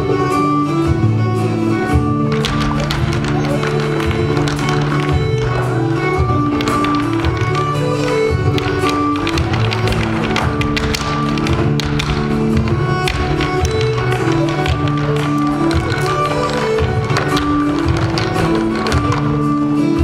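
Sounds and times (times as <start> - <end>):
dance music: 0.0 - 20.0
hard shoes tapping on stage floor: 0.0 - 20.0.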